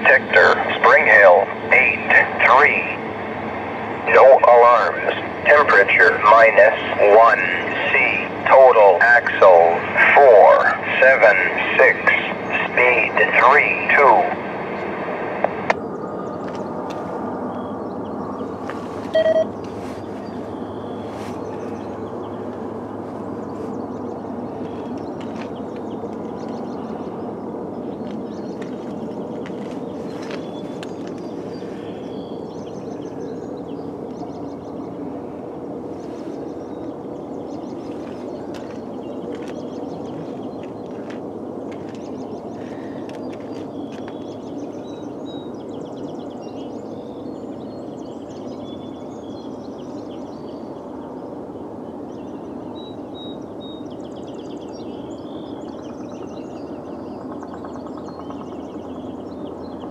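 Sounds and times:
synthesized voice over radio: 0.0 - 3.0, 4.0 - 15.7
outdoor background noise: 0.0 - 59.9
short tone: 19.1 - 19.5.

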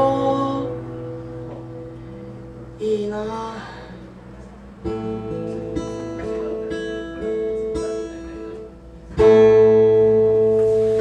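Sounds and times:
acoustic guitar picking notes: 0.0 - 11.0
guitar chord ringing: 0.0 - 11.0.

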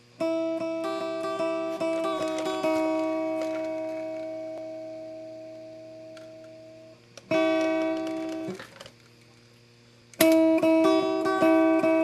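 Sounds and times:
guitar chord ringing: 0.0 - 8.8, 10.2 - 12.0
plucked guitar notes: 0.2 - 8.7, 10.2 - 12.0.

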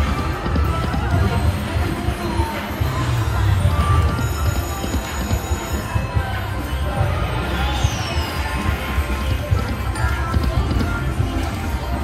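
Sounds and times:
busy casino din: 0.0 - 12.0.

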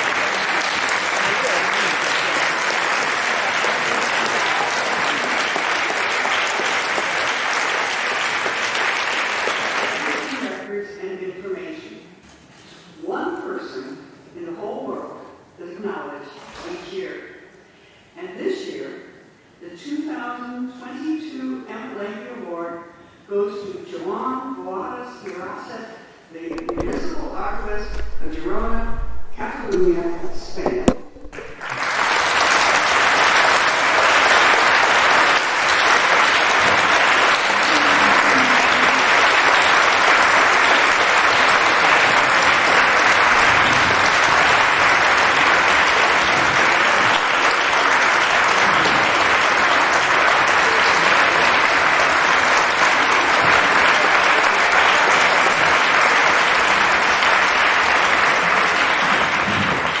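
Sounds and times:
audience applause: 0.0 - 10.6, 30.8 - 60.0.

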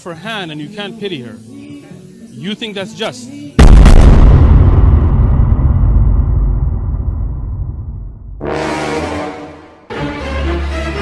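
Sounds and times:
low explosion rumble: 3.6 - 8.4.

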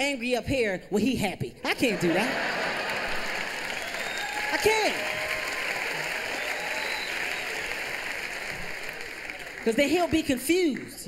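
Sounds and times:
audience laughter: 1.8 - 4.0
large audience applauding: 2.2 - 11.0.

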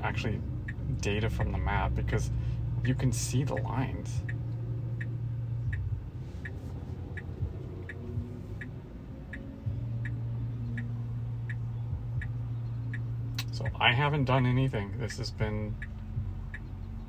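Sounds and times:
low cabin hum: 0.0 - 17.0
turn signal ticking: 0.0 - 17.0.

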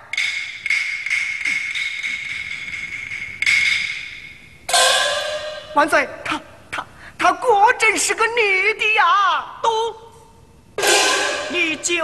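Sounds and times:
cymbal strike ringing: 4.1 - 5.8, 10.8 - 11.9.

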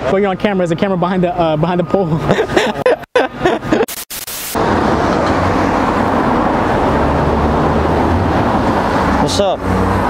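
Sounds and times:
street traffic rumble: 0.0 - 10.0.

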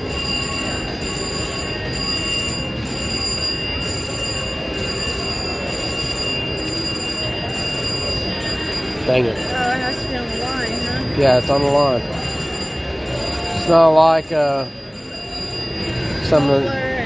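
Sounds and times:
electronic slot machine sounds: 0.0 - 16.7
slot machine reels spinning: 0.0 - 16.7
thin high tone: 0.0 - 17.0.

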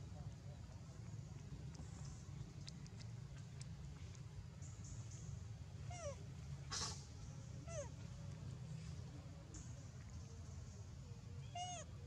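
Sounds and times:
rustling hiss: 6.6 - 7.4.

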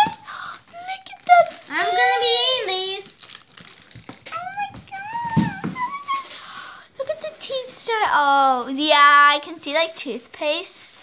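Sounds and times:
girl making gliding vocal sounds: 0.0 - 2.8, 4.3 - 7.4.

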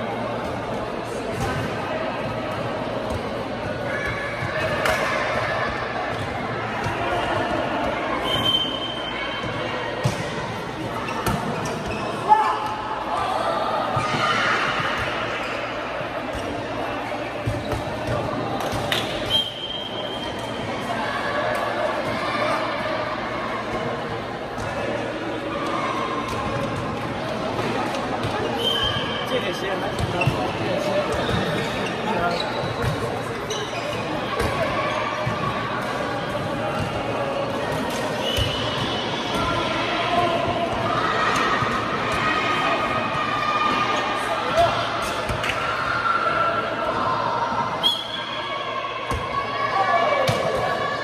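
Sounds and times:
players calling and chattering: 0.0 - 51.0
sneakers squeaking on floor: 11.0 - 12.6, 28.2 - 35.4.

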